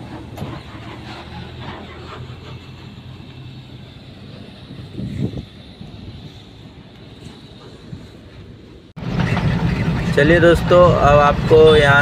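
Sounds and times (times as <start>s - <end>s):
road noise: 0.0s - 12.0s
truck diesel engine humming: 0.0s - 12.0s.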